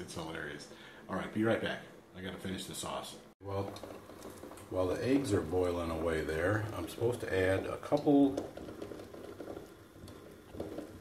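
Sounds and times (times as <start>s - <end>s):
pans bubbling and popping: 3.4s - 11.0s.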